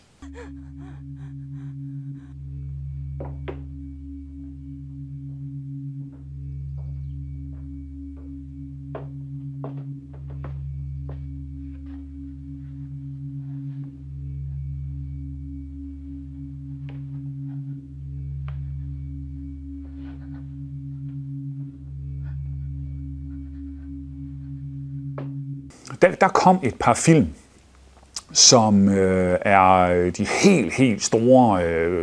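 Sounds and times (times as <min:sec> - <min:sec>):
low droning hum: 0:00.0 - 0:32.0.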